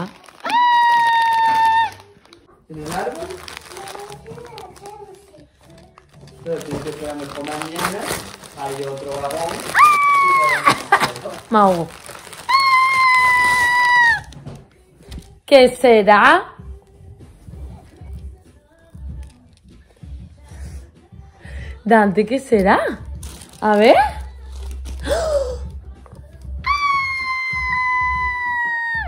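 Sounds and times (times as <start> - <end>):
tissue paper rustling: 0.0 - 14.4, 23.2 - 25.3
woman squealing: 0.4 - 2.1, 9.7 - 11.0, 12.4 - 14.3, 26.6 - 29.0.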